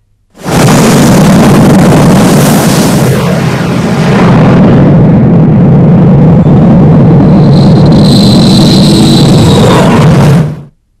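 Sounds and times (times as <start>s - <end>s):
loud steady rumbling: 0.0s - 11.0s.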